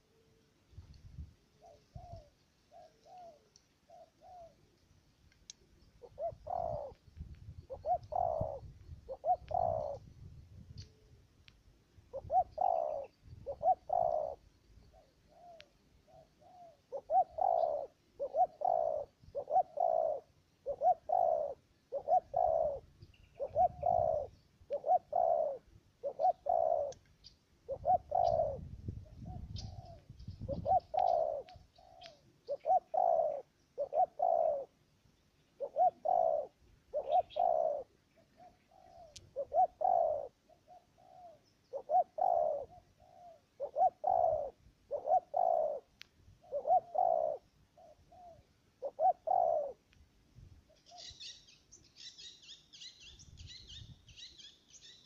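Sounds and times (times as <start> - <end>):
dove cooing: 1.5 - 4.8, 5.6 - 11.2, 12.1 - 34.8, 35.6 - 49.9, 50.7 - 55.0.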